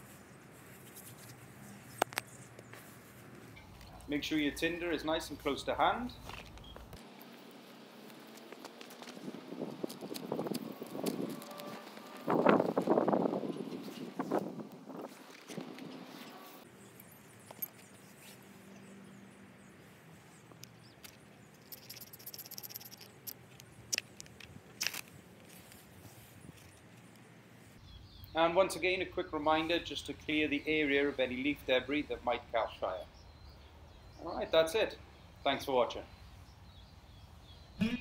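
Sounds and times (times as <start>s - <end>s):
dry grass rustling: 0.0s - 4.1s, 6.2s - 18.8s, 19.8s - 27.8s.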